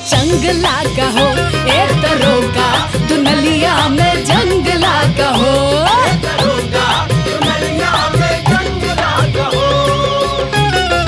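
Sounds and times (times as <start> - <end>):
instrumental backing with beat: 0.0 - 11.0
person singing: 0.0 - 11.0.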